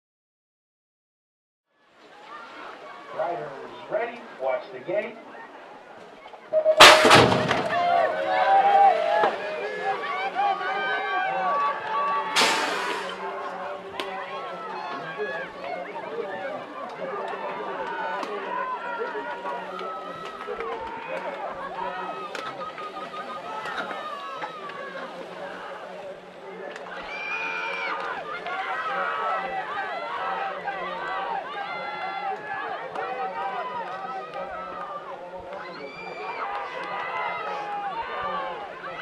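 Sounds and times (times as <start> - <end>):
spectators shouting and cheering: 2.0 - 39.0
starting gate bang: 6.6 - 8.6, 12.4 - 13.3.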